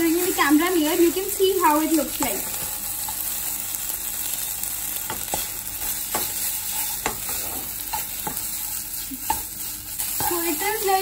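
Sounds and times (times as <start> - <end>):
vegetables sizzling in a wok: 0.0 - 11.0
spatula stirring and scraping: 2.5 - 11.0.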